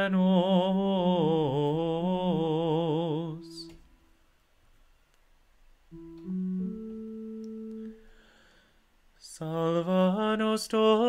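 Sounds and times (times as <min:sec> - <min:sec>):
held keyboard note: 0:05.9 - 0:08.2.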